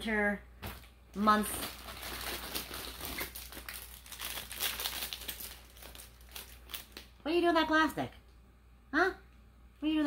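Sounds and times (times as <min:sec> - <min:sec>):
plastic packaging crinkling: 0:00.6 - 0:07.2.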